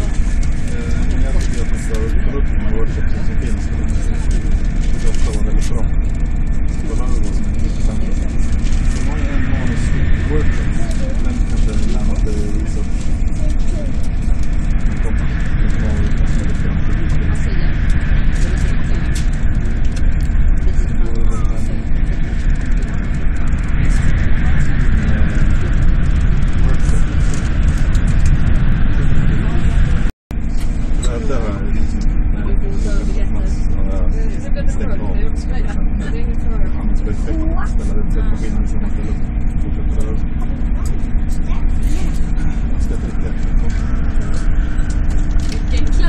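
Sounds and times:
train rumbling at speed: 0.0 - 46.0.

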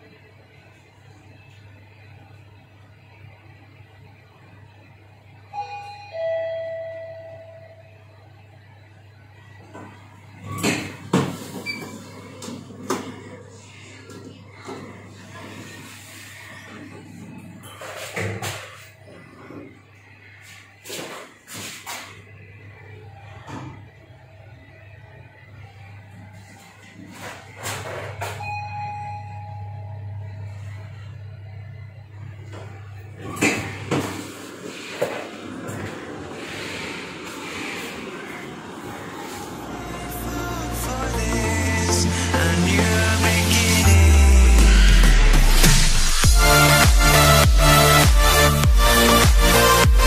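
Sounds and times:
two-tone lift arrival chime: 5.5 - 8.0, 28.4 - 31.7
lift car hum: 22.2 - 50.0.

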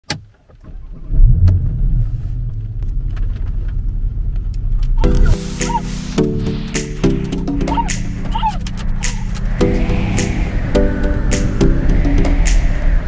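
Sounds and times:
car engine starting and idling: 0.1 - 13.0
background music: 5.0 - 13.0.

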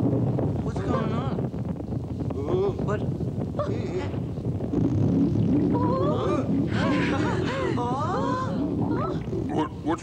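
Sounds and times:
low continuous rumble: 0.0 - 10.0.

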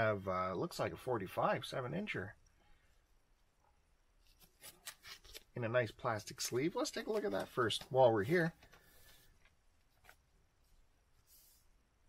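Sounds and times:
plastic record sleeve rustling: 4.2 - 11.7.

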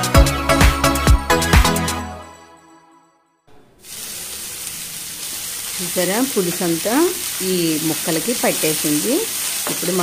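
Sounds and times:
curry sizzling in a frying pan: 3.8 - 10.0.

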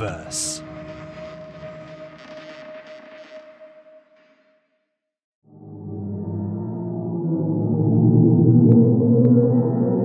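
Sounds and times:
eerie held tone drone: 5.5 - 10.0.

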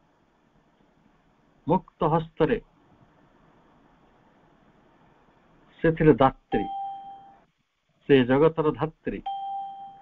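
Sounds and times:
clear chime tone: 6.6 - 7.4, 9.3 - 10.0.

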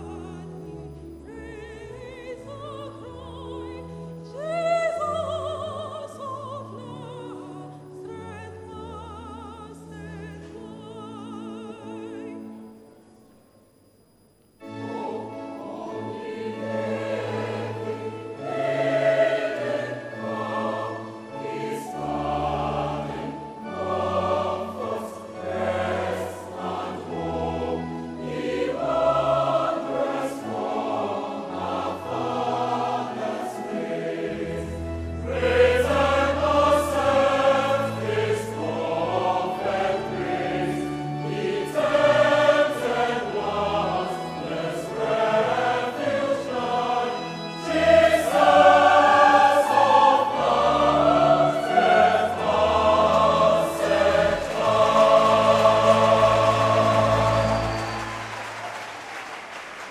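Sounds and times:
choir singing a hymn: 0.0 - 12.8, 14.6 - 59.0.

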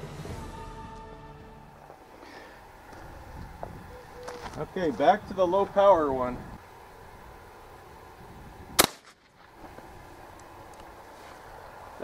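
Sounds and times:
faint outdoor background noise: 0.0 - 12.0
shotgun shot: 8.8 - 9.3.

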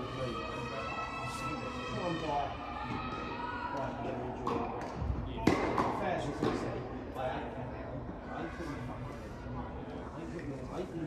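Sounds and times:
tennis ball knocks: 4.4 - 6.6.

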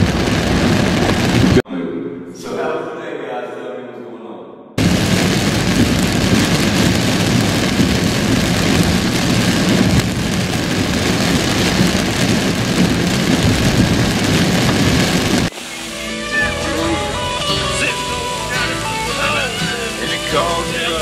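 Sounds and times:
heavy rain on a car: 0.0 - 1.6, 4.8 - 21.0.

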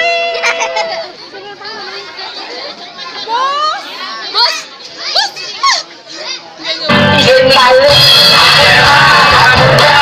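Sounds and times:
children shouting and squealing: 0.0 - 6.9
loud music: 6.9 - 10.0.

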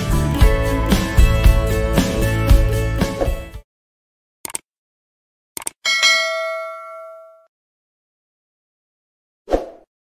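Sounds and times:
bell-like chime: 5.9 - 7.5.

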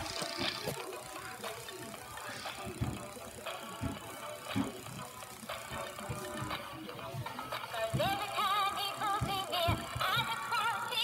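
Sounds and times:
toy playing a song: 0.0 - 11.0.

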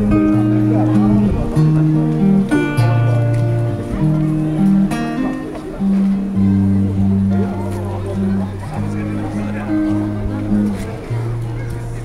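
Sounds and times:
acoustic guitar melody: 0.0 - 12.0.

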